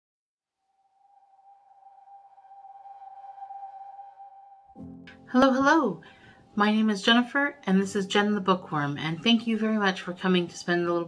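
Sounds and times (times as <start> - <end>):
held electronic tone: 0.6 - 5.0.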